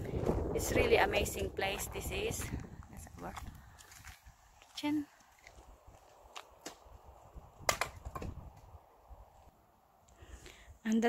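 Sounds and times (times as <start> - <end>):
footsteps on a dirt path: 0.0 - 7.5.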